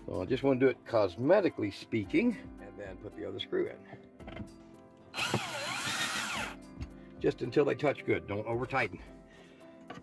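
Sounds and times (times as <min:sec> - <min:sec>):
power drill driving screw into metal: 0:05.2 - 0:06.6.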